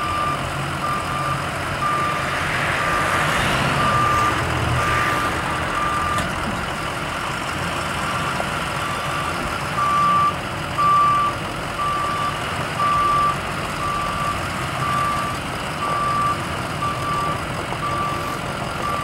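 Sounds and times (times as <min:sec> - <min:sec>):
backup alarm beeping: 0:00.0 - 0:02.3, 0:03.8 - 0:05.0, 0:05.7 - 0:06.4.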